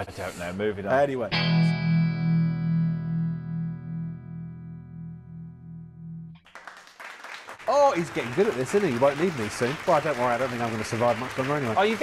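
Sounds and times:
distorted electric guitar chord: 1.4s - 6.4s.

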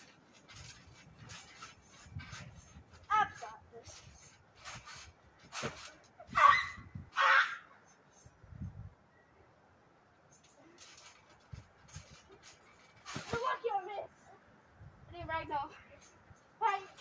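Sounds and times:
trampoline thumps and rattles: 0.0s - 8.2s, 10.3s - 14.1s, 15.3s - 17.0s
child squealing: 6.3s - 7.6s.

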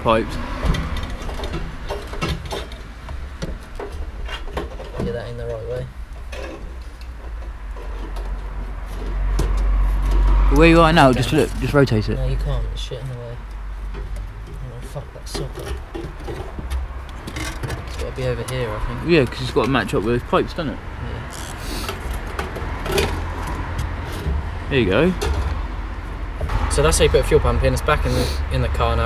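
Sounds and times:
metal knocks and clunks: 0.5s - 10.5s, 13.9s - 20.4s, 21.9s - 27.1s.

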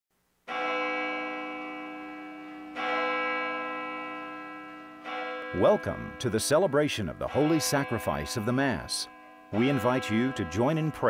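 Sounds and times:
large bell tolling: 0.5s - 11.0s.

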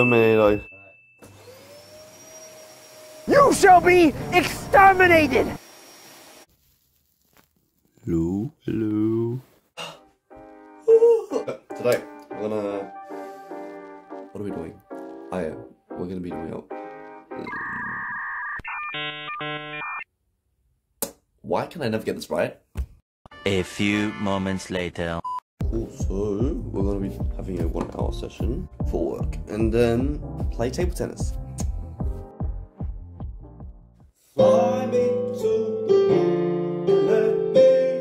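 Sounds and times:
vacuum cleaner motor whine: 1.2s - 3.3s.

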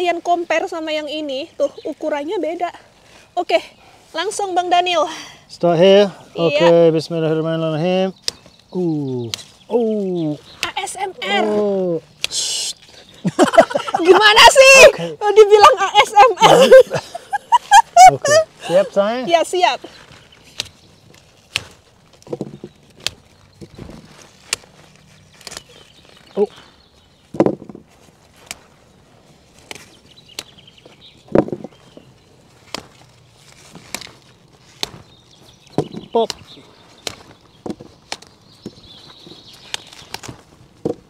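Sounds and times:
sprouts snapping off stalk: 8.2s - 10.8s, 11.4s - 12.9s, 20.0s - 26.5s, 28.2s - 28.7s, 29.5s - 31.8s, 32.6s - 38.8s, 39.5s - 40.5s.

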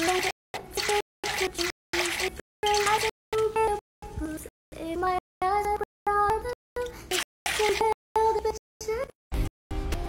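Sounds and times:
high-pitched voice: 7.1s - 9.2s.

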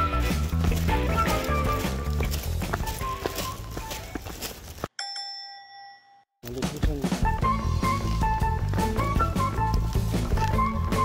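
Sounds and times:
background music: 0.0s - 3.6s, 7.0s - 11.0s
footsteps on leafy dirt trail: 0.0s - 5.0s, 6.4s - 11.0s.

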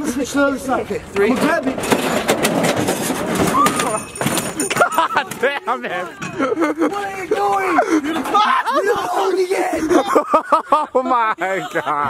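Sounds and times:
metal go-kart scraping and clattering: 0.6s - 6.5s, 7.4s - 8.9s.

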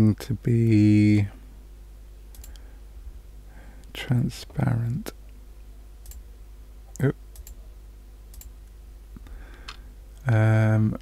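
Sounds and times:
low steady hum: 0.0s - 11.0s
computer mouse clicking: 2.3s - 2.6s, 6.0s - 6.2s, 7.4s - 7.6s, 8.3s - 8.5s.

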